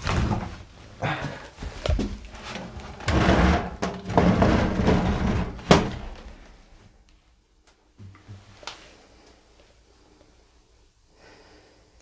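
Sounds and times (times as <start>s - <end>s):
wooden sliding door scraping: 2.4s - 6.4s.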